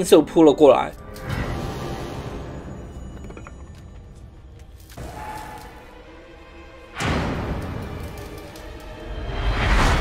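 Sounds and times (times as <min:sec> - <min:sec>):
dark scary music: 0:00.0 - 0:10.0.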